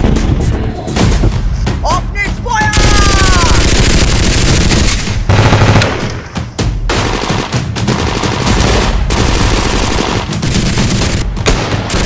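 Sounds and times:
person shouting: 0:01.9 - 0:03.6.

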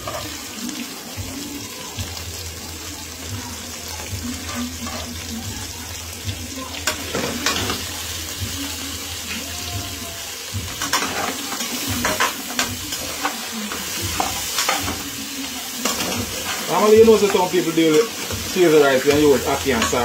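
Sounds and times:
food sizzling in a pot: 0:00.0 - 0:20.0
spatula scraping the pan: 0:04.4 - 0:05.2, 0:10.8 - 0:20.0.

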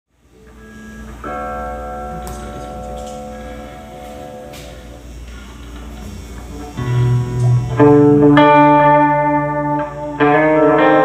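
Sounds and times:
electric guitar chords: 0:00.1 - 0:11.0
low hum: 0:00.2 - 0:10.3.

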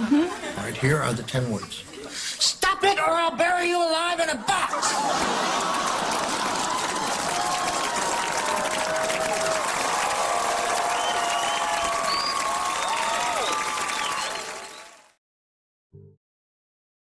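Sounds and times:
audience applauding and cheering: 0:04.8 - 0:15.2.

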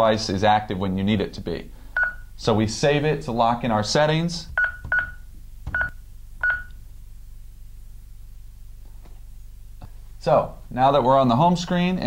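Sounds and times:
alarm panel beeping: 0:02.0 - 0:02.3, 0:04.5 - 0:06.8.

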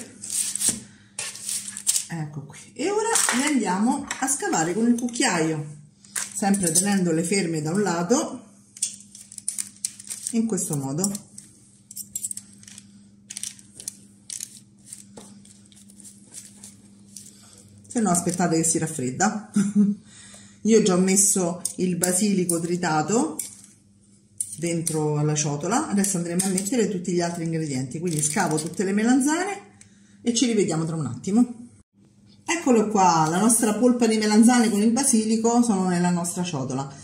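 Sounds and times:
metal tongs scraping parchment paper: 0:00.0 - 0:02.1, 0:08.8 - 0:17.5, 0:28.0 - 0:28.8.

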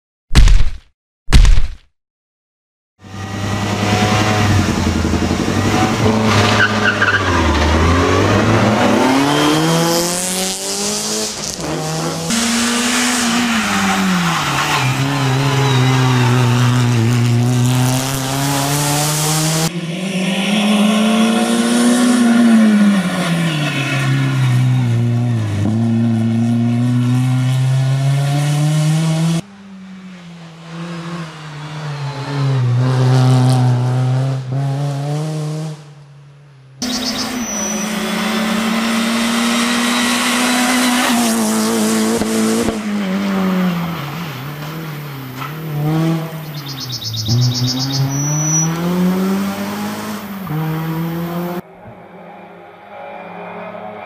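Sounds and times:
rally car engine revving: 0:03.0 - 0:36.0, 0:36.8 - 0:54.0
tyres squealing: 0:13.4 - 0:17.2.

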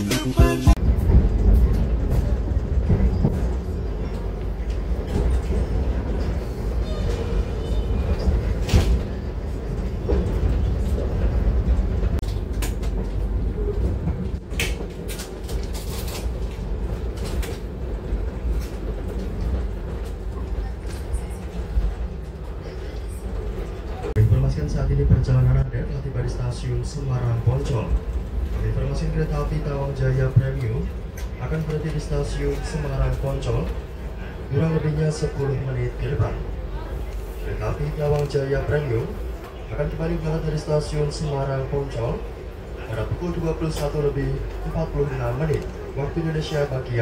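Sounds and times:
background music: 0:00.0 - 0:00.8
train interior rumble: 0:00.0 - 0:47.0.

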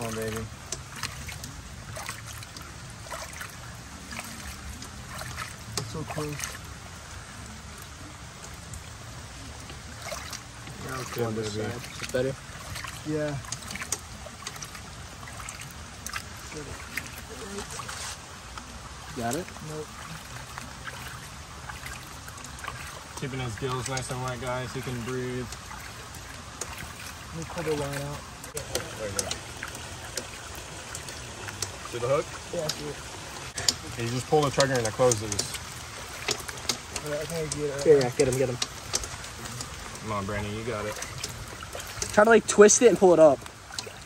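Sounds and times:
faint small drips: 0:00.0 - 0:44.0
small water splashes: 0:00.0 - 0:44.0
water trickling and lapping: 0:00.0 - 0:44.0.

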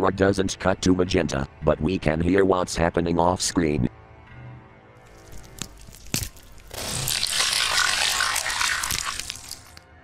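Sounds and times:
flesh crunching and tearing: 0:05.1 - 0:09.8
bones cracking: 0:05.1 - 0:09.9.

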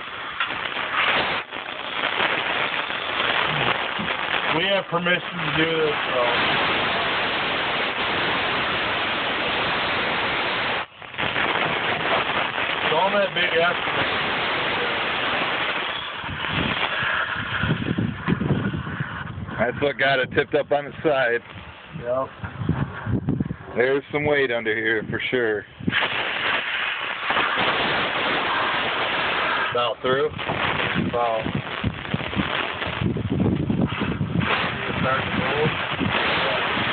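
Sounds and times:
torch flame hissing: 0:00.0 - 0:36.9.

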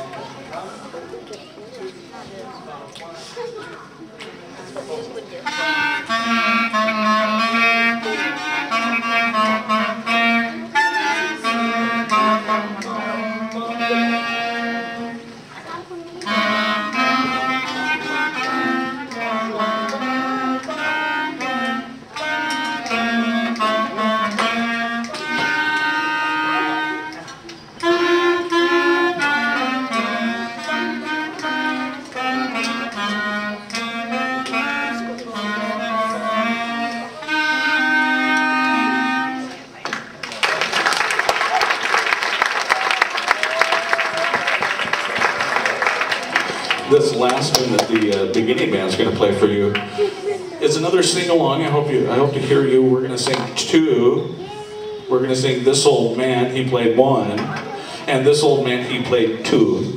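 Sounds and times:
clarinets playing a tune: 0:05.4 - 0:39.8.

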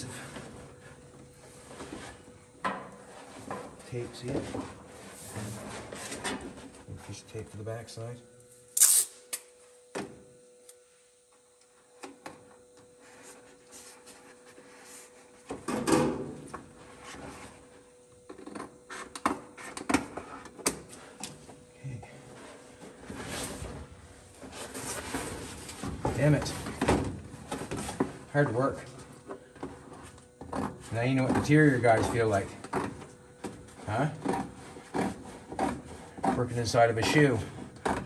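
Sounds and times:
faint steady hum: 0:00.0 - 0:38.0
tape ripping from roll: 0:08.8 - 0:09.1.

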